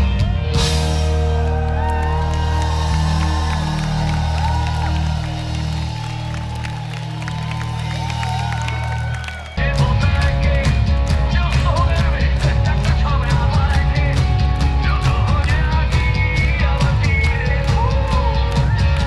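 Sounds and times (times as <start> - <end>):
crowd cheering and whistling: 0.0 - 19.0
rock band playing: 0.0 - 19.0.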